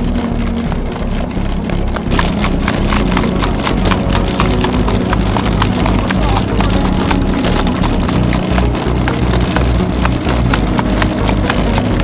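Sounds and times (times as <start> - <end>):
horse hoofbeats on dirt: 0.0 - 12.0
music playing: 0.0 - 12.0.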